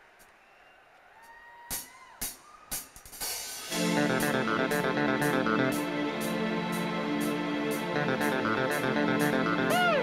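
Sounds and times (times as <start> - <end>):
rock band playing: 3.6 - 10.0.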